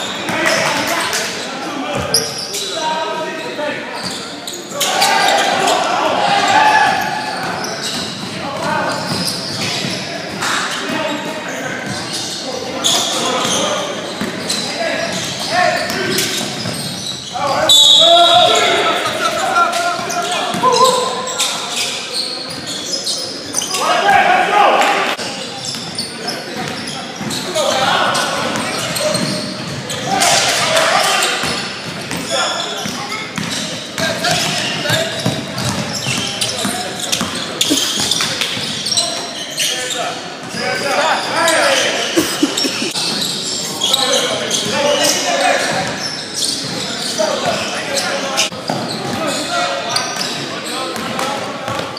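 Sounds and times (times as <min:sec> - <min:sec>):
sneakers squeaking on gym floor: 0:00.0 - 0:24.0, 0:25.2 - 0:51.9
players' voices: 0:00.0 - 0:51.9
basketball bouncing: 0:34.3 - 0:36.2
people calling out: 0:41.8 - 0:43.2.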